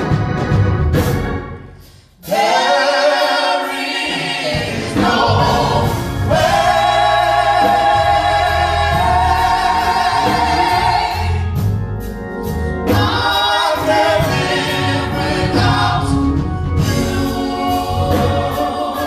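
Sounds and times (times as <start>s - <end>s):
group singing a hymn: 2.2s - 11.8s, 12.5s - 19.0s
low organ: 4.7s - 19.0s.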